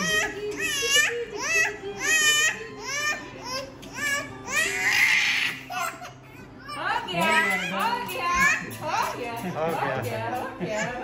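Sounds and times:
infant crying: 0.0s - 9.2s
adults talking: 6.5s - 11.0s.

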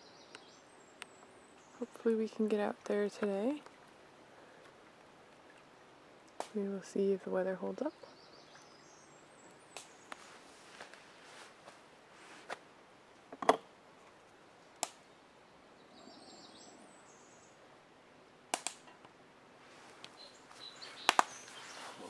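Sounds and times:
sharp clicks and snaps: 14.8s - 15.0s, 18.5s - 19.1s, 21.0s - 21.4s.

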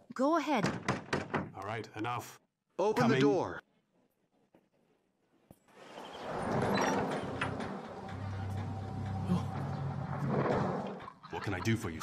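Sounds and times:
wooden door scraping open: 5.8s - 11.2s.

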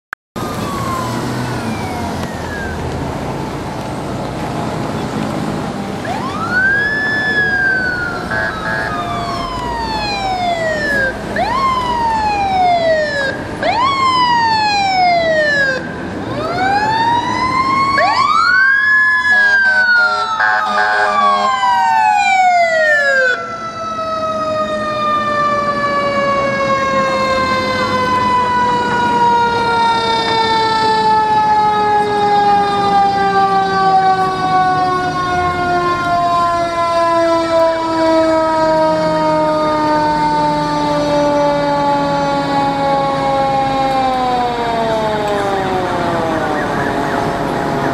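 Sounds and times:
fire engine siren winding down: 0.4s - 47.9s
police siren wailing: 0.4s - 47.9s.

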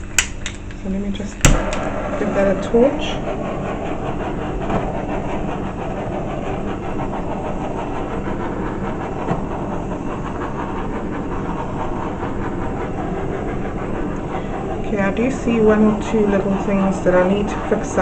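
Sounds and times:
gas torch flame hissing: 0.0s - 18.0s.

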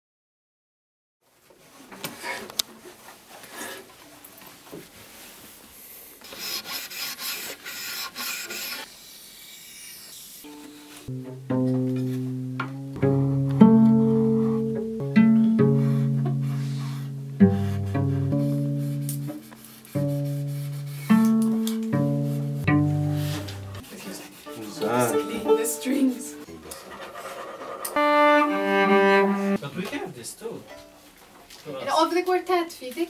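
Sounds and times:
wavering string sounds: 11.1s - 19.4s, 20.8s - 23.8s, 24.5s - 26.5s
bowed cello note: 11.1s - 19.5s, 20.2s - 23.8s, 24.5s - 26.4s, 27.9s - 29.6s
cello plucked notes: 11.1s - 23.8s, 24.5s - 26.5s, 28.0s - 29.6s.

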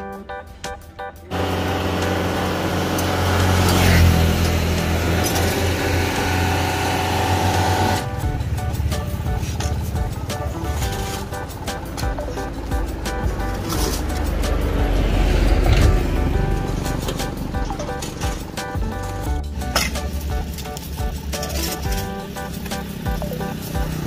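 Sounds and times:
plucked rhythmic music: 0.0s - 24.0s
vehicle engine rumble: 1.3s - 24.0s.

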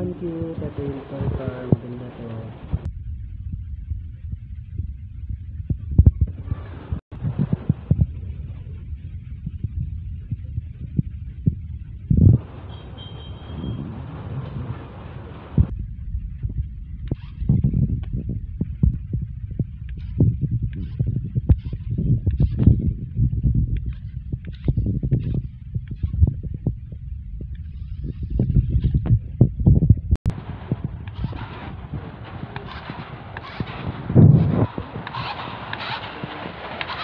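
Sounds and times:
low rumble: 0.0s - 36.9s.

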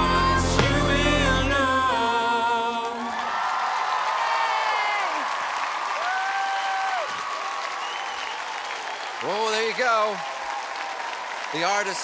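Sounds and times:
pop duet singing: 0.0s - 3.4s
applause with whoops and cheers: 2.9s - 12.0s.

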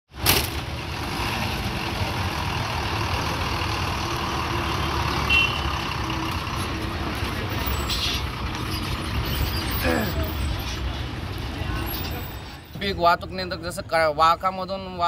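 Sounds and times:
bus diesel engine rumbling: 0.1s - 15.0s.

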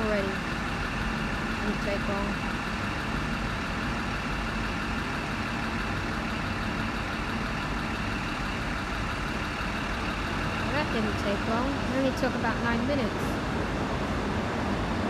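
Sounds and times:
diesel engine idling: 0.0s - 15.0s.

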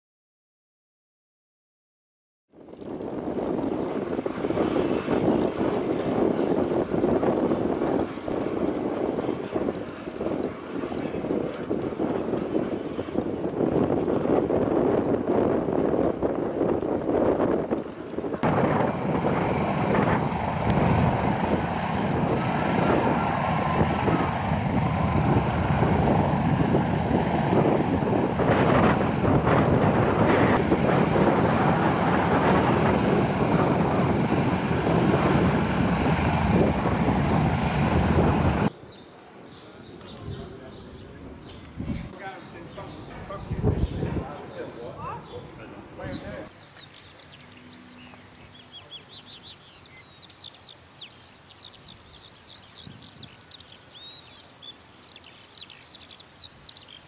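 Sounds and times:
propeller aircraft engine taxiing: 2.5s - 57.0s.

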